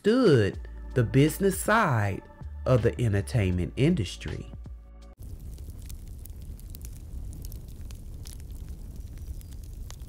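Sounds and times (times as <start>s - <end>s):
faint crackles and clicks: 5.2s - 10.0s
low rumbling noise: 5.2s - 10.0s.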